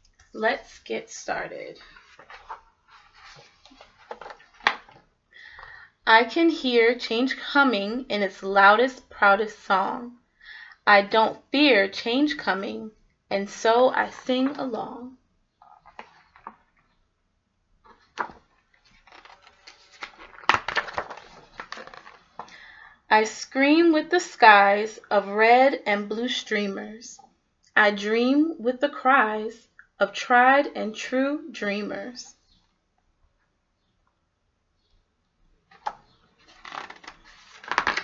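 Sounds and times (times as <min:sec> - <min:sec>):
book pages rustling: 0:01.8 - 0:05.1, 0:15.6 - 0:17.0, 0:17.8 - 0:22.5, 0:35.7 - 0:38.0.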